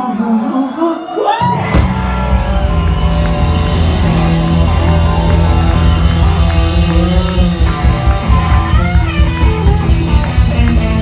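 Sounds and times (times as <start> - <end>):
rock band playing: 1.4 - 11.0
person singing: 4.0 - 11.0.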